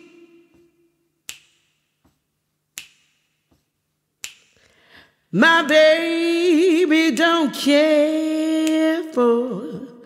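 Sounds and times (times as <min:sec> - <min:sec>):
finger snaps: 0:00.0 - 0:04.8, 0:08.6 - 0:08.9.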